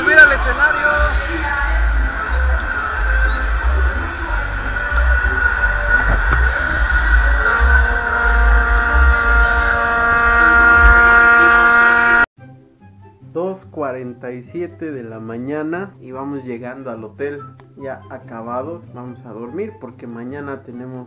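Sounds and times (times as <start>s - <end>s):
loud live music with pulsing bass: 0.0s - 11.1s.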